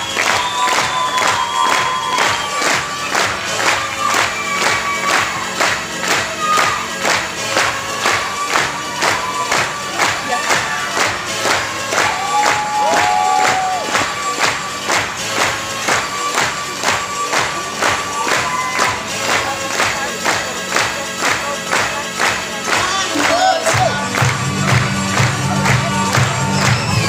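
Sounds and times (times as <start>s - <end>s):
crowd noise: 0.0s - 27.0s
dance music with fast beat: 0.0s - 27.0s.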